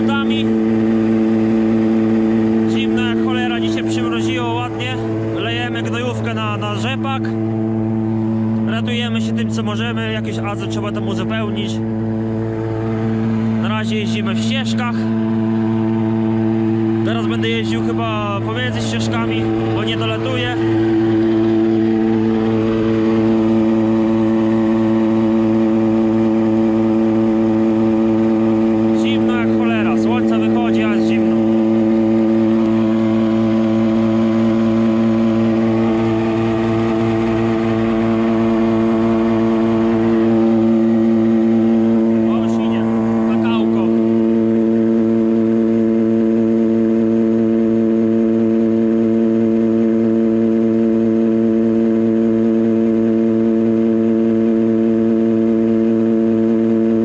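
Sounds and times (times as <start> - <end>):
tractor engine droning: 0.0 - 57.0.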